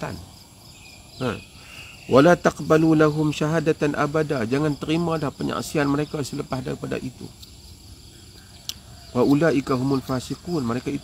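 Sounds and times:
insects chirping: 0.0 - 11.0.

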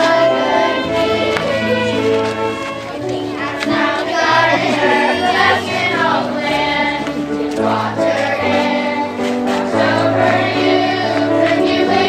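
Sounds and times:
choir singing held chords: 0.0 - 12.0.

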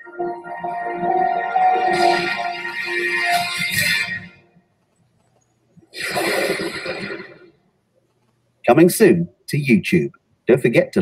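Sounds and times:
background music: 0.0 - 4.6
noisy sound effect: 1.2 - 4.5, 5.9 - 7.6.

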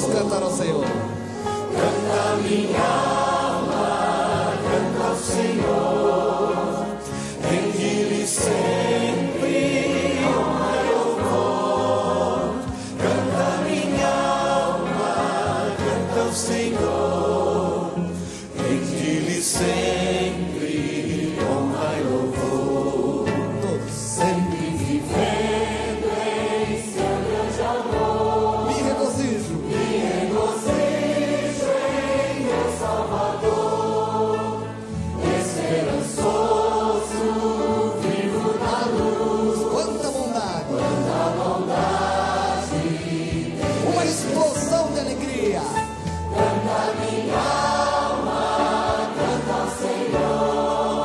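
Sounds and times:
choir singing: 0.0 - 51.0.

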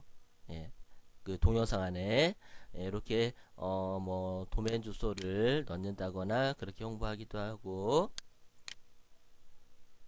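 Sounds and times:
faint background hiss: 0.0 - 10.0.

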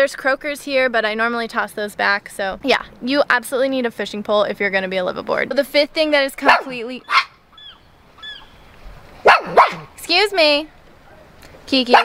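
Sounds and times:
dog barking: 6.4 - 7.4, 9.2 - 9.9.

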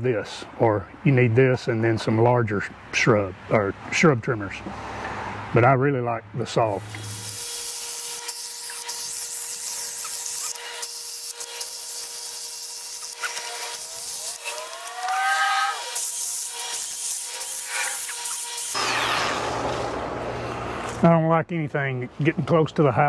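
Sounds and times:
cordless cutting tool humming: 6.8 - 20.1.

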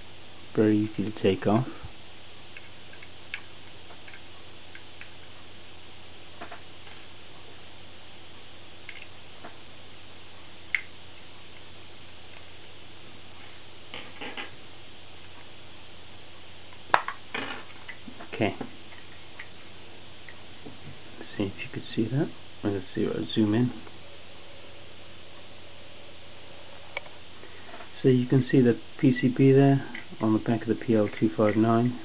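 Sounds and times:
room hiss: 0.0 - 32.0.

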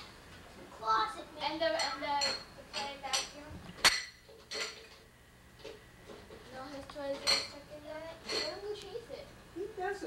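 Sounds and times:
dishes and cutlery clinking: 1.4 - 7.6, 8.2 - 8.7.

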